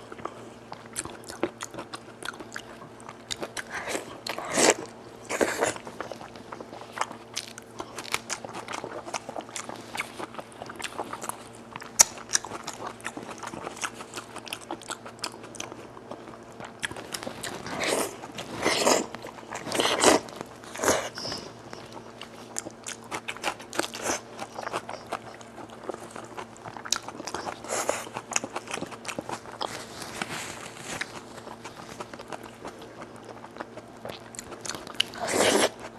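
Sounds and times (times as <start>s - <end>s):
wet chewing and biting: 0.1s - 35.9s.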